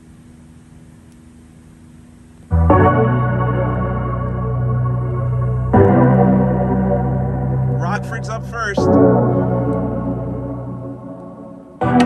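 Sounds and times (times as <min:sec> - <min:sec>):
electronic music with deep bass: 0:02.5 - 0:12.0
wavering voice-like sound: 0:07.8 - 0:09.0.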